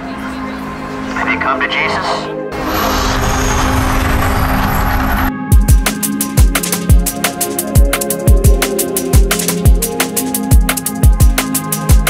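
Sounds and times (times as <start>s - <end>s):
deep rumble: 2.5s - 5.6s
gas fire bursting: 2.6s - 5.3s.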